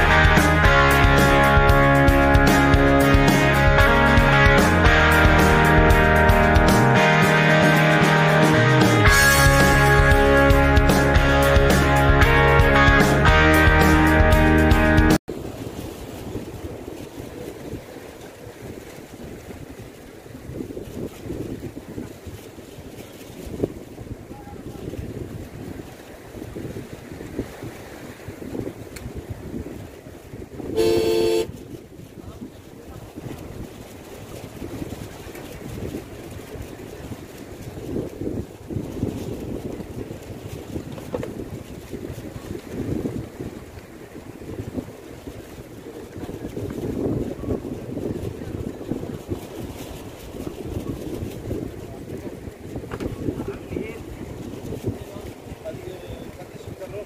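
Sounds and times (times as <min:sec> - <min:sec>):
wind buffeting microphone: 0:15.2 - 0:57.0
horn toot: 0:30.7 - 0:31.6.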